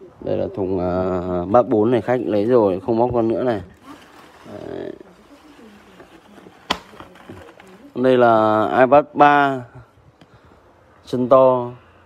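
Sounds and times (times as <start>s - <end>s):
faint handling noise: 1.7s - 8.2s.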